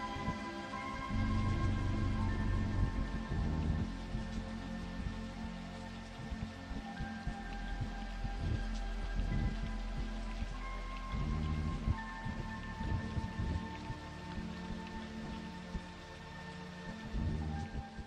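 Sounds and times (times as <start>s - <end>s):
held synthesizer notes: 0.0s - 15.4s.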